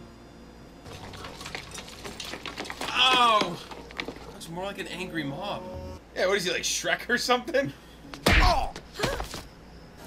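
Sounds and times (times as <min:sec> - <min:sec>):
footsteps running on cobblestones: 0:00.8 - 0:04.6.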